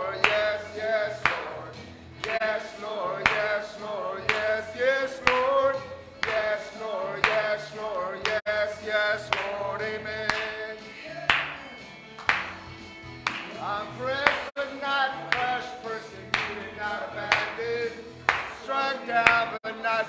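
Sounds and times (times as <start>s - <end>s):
worship song with band: 0.0s - 11.3s, 13.4s - 20.0s.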